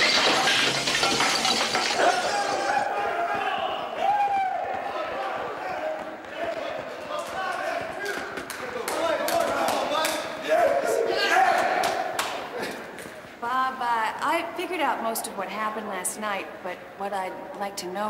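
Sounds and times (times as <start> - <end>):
men shouting and hollering: 2.0 - 8.2
footsteps clattering in stairwell: 3.0 - 9.9.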